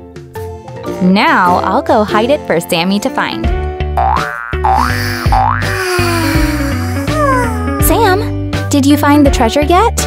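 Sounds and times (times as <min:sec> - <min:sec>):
background music with bass line: 0:03.2 - 0:10.0
cartoon boing sound effect: 0:04.0 - 0:05.8.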